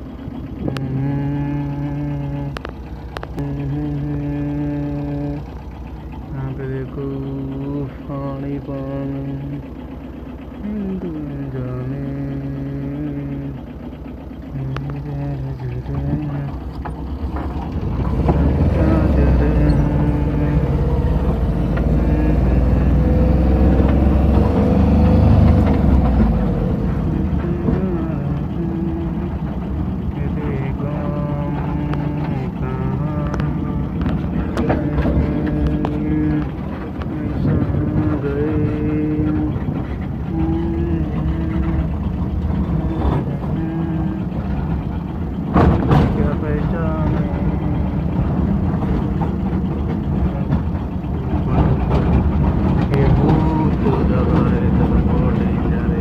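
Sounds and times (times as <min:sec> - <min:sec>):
vehicle engine and road noise: 0:00.0 - 0:56.0.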